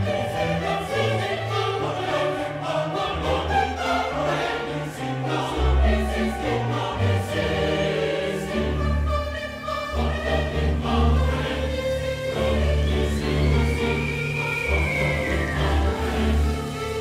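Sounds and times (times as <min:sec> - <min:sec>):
choir singing with orchestra: 0:00.0 - 0:17.0.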